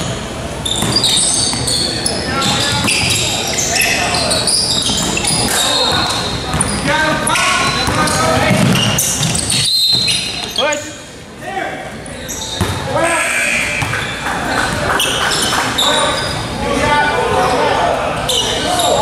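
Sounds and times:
ball bouncing on hardwood court: 2.4 - 3.2, 4.8 - 10.4, 12.6 - 12.8, 13.7 - 15.6
people calling out: 12.9 - 19.0.

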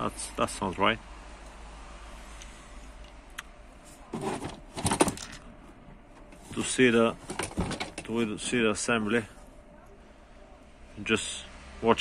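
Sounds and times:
plastic rustling and scraping: 3.8 - 5.4, 6.2 - 8.5.

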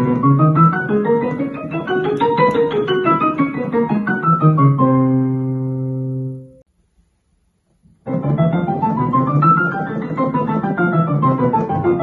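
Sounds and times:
digital piano octaves: 0.0 - 6.7, 8.0 - 12.0.

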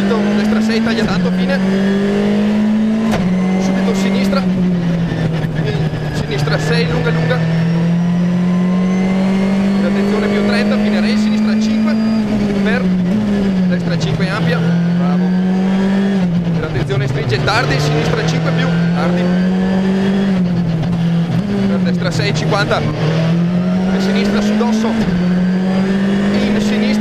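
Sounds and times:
rally car engine revving: 0.0 - 27.0.

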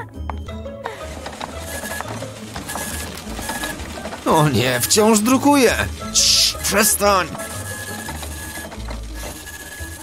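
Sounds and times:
printer whirring and clattering: 1.0 - 10.0.

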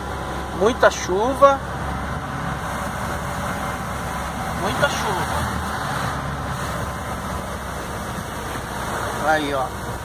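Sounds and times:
truck engine drone: 0.0 - 10.0
tyres hissing on wet road: 0.0 - 10.0.

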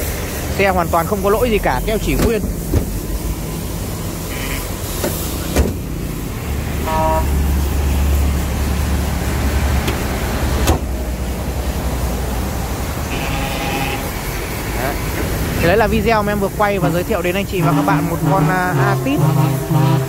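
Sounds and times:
motor vehicle engine rumble: 0.0 - 20.0.

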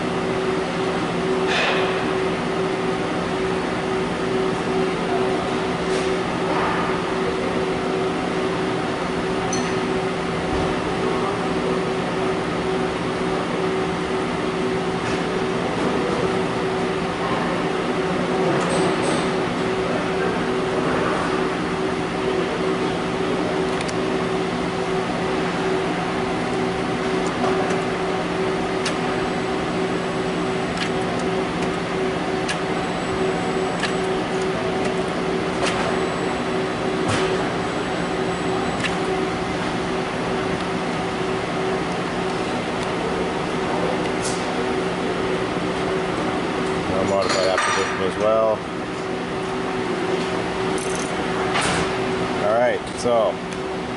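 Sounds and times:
steady machine hum: 0.0 - 53.9.

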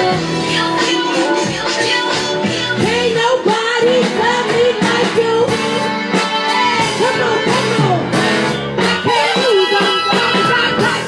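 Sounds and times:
amplified band music: 0.0 - 11.0
woman singing through a microphone: 0.0 - 11.0.

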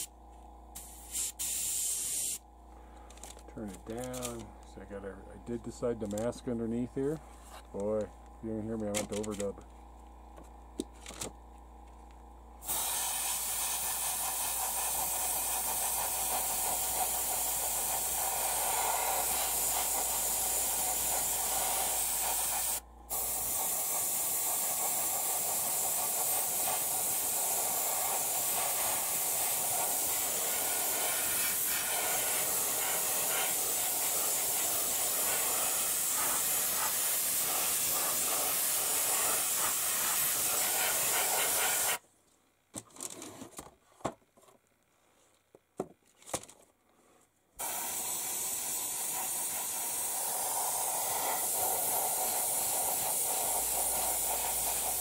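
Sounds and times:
airbrush spraying hiss: 0.7 - 2.4, 12.6 - 42.0, 47.6 - 55.0.

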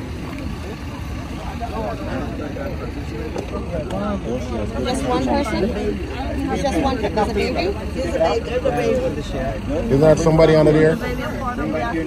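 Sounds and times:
crowd talking: 0.0 - 12.0.

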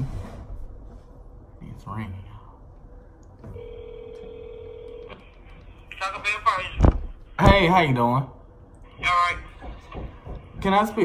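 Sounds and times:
telephone ringback tone: 3.6 - 5.1.

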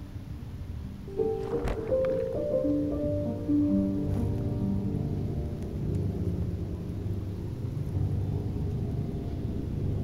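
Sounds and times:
faint musical drone: 0.0 - 10.0.

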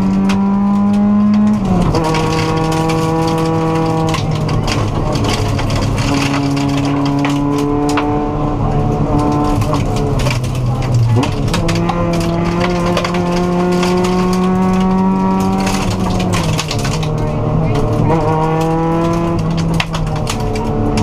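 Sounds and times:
car engine under hard throttle: 0.0 - 21.0
gravel ticking against car: 0.0 - 21.0.

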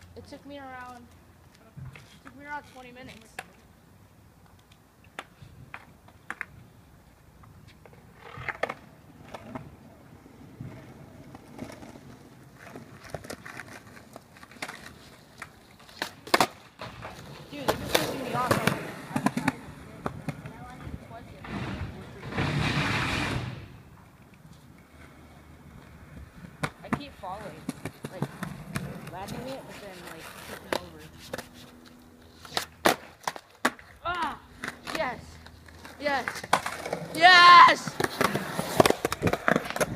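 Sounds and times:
skateboard wheels rolling on asphalt: 0.0 - 39.9
skateboard clacks: 10.6 - 23.4, 25.8 - 31.6, 32.4 - 39.9
skateboard clattering: 10.6 - 34.0, 34.6 - 39.9.

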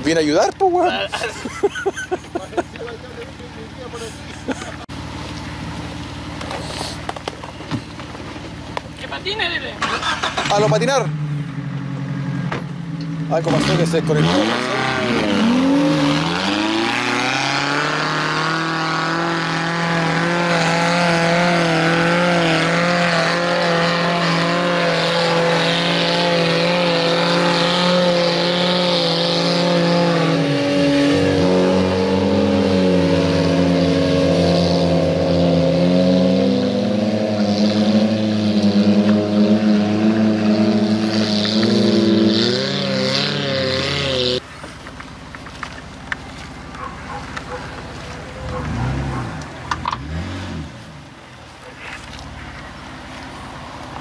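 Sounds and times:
engine revving high: 9.4 - 44.4, 46.8 - 51.0
wheels spinning in mud: 43.0 - 50.6.

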